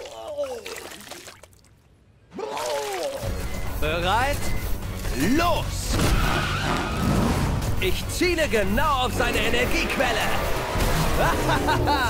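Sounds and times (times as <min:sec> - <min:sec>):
background music with heavy bass: 0:07.4 - 0:12.0.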